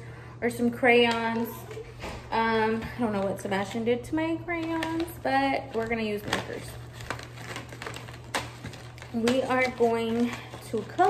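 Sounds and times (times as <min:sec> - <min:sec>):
cardboard box rustling: 0:06.2 - 0:11.0.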